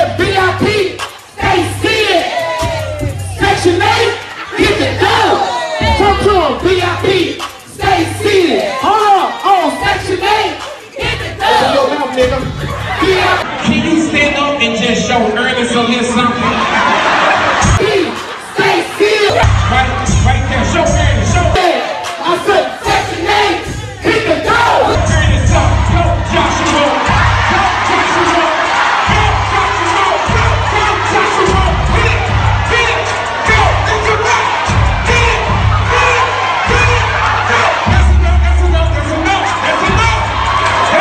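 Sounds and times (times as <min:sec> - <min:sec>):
loud music with heavy bass beat: 0:00.0 - 0:14.2, 0:15.6 - 0:41.0
audience cheering and shouting: 0:00.0 - 0:41.0.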